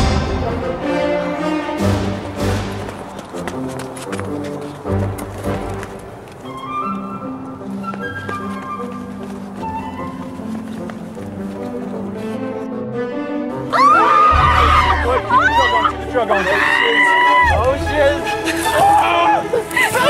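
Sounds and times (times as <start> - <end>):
orchestral music with strings: 0.0 - 20.0.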